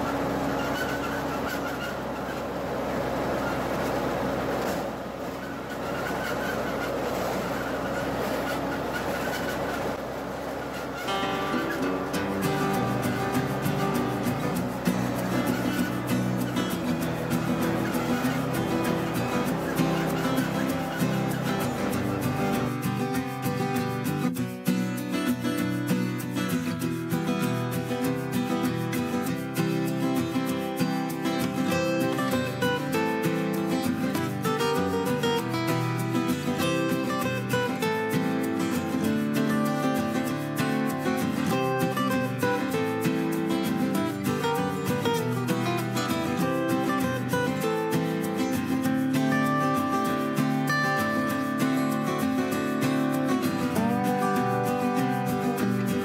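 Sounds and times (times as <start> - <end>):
acoustic guitar music: 0.0 - 56.0
tractor engine rumble: 0.0 - 56.0.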